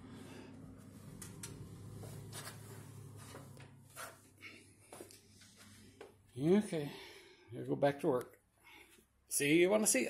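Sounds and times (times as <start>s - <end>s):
faint low hum: 0.0s - 8.9s.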